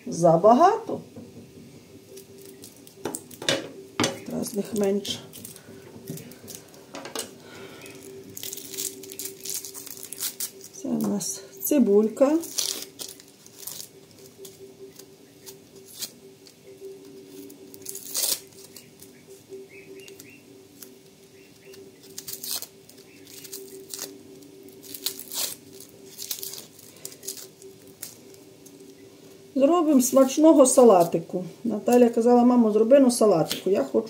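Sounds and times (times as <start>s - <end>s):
steady low hum: 0.0s - 34.0s
onion skin crackling and tearing: 2.1s - 29.0s, 30.1s - 32.2s.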